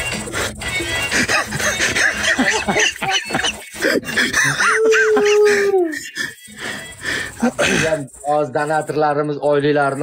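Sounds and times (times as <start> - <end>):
men laughing hard: 1.1 - 7.9.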